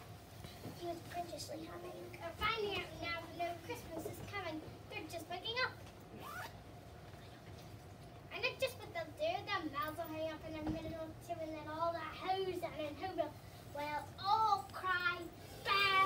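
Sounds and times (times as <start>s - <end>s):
children talking quietly: 0.0s - 16.0s.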